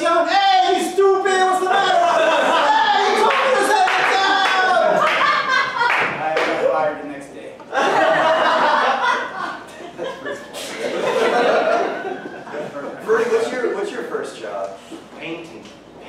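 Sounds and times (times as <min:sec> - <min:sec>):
audience laughing: 0:01.7 - 0:06.7, 0:07.7 - 0:13.4
audience applauding: 0:02.9 - 0:06.7.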